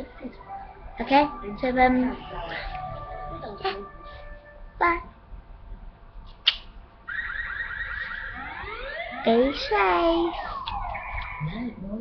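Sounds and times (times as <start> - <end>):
electronic alarm tone with rising sweeps: 0.4 - 4.2, 7.1 - 11.9
sharp click: 6.4 - 6.7.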